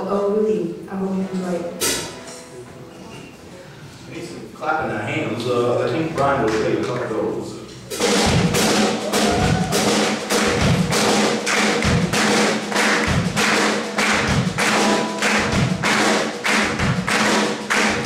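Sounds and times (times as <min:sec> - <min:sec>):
thumping percussive beat: 0:07.9 - 0:18.0
acoustic guitar strumming: 0:08.3 - 0:18.0.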